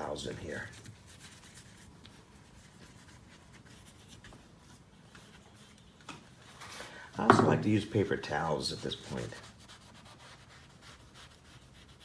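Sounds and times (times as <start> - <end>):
paintbrush scratching on paper: 0.0 - 6.6, 8.5 - 12.0.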